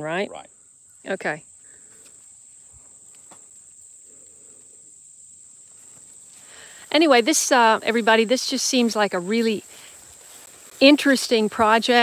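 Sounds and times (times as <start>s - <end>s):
insect chorus: 0.0s - 12.0s
faint rustling: 1.6s - 12.0s.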